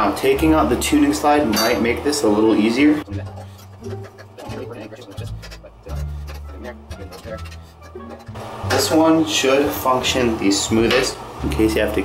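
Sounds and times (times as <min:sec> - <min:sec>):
quiet background music with bass: 0:00.0 - 0:12.0.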